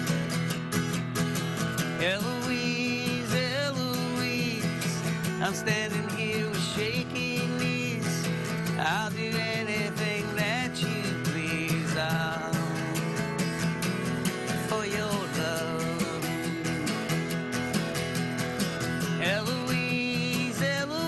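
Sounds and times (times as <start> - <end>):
strummed guitar: 0.0 - 21.0
man singing: 1.8 - 17.7, 18.8 - 21.0.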